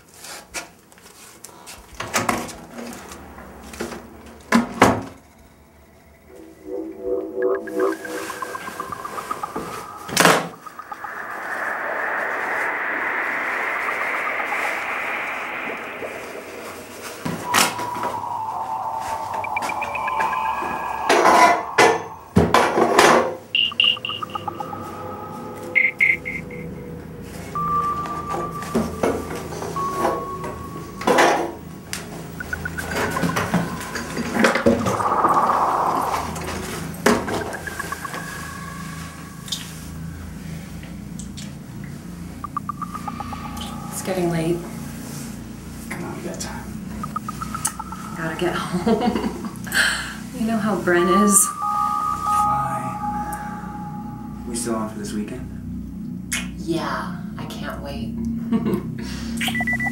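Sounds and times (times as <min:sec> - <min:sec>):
low hum: 0:05.3 - 0:56.4
film score music: 0:06.1 - 0:40.2, 0:51.3 - 0:54.8.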